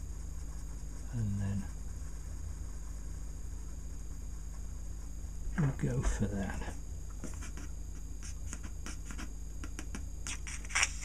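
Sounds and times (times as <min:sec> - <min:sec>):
pencil scratching on paper: 0:06.1 - 0:11.0.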